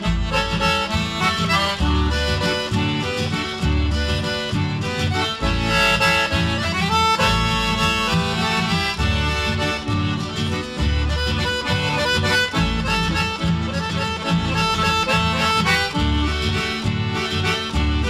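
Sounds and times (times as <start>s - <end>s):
accordion melody: 0.0s - 18.0s
guitar and bass accompaniment: 0.0s - 18.0s.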